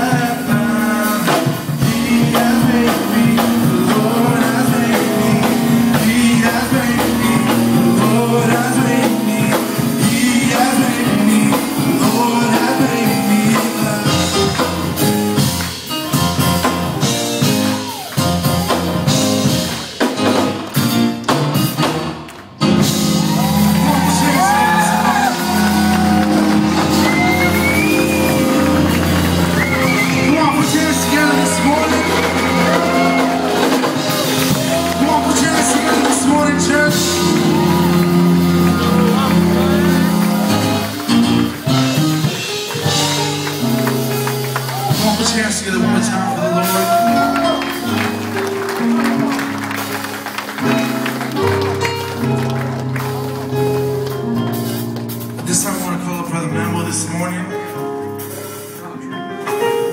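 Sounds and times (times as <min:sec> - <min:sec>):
sustained keyboard chords: 0:00.0 - 0:59.9
congregation clapping: 0:02.4 - 0:16.4, 0:17.6 - 0:45.7, 0:46.6 - 0:55.8
congregation shouting and whooping: 0:17.4 - 0:19.0, 0:22.8 - 0:42.0, 0:44.6 - 0:45.2, 0:46.0 - 0:50.4.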